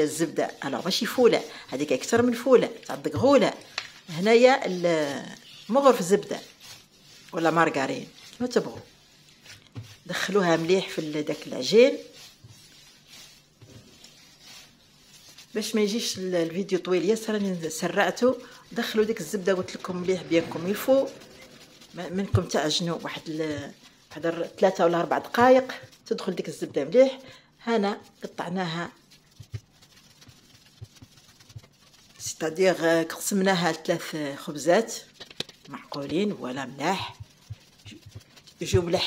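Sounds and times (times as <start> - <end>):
dough squishing: 0.0 - 39.0.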